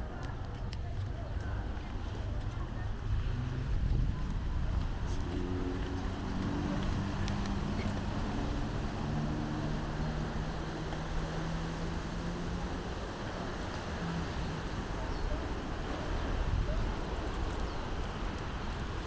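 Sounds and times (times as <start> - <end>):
low engine hum: 0.0 - 19.0
wind on microphone: 2.0 - 9.0.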